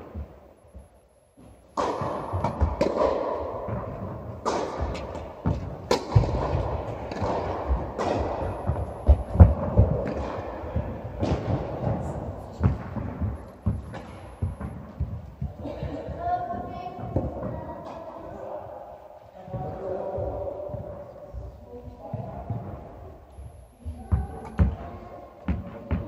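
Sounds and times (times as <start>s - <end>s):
ball bouncing: 0.0s - 18.0s, 23.9s - 26.0s
racket striking ball: 1.4s - 18.0s.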